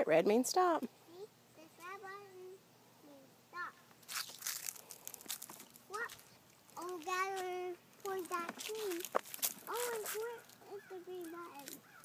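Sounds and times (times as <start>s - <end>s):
dry leaves crunching: 4.0s - 12.0s.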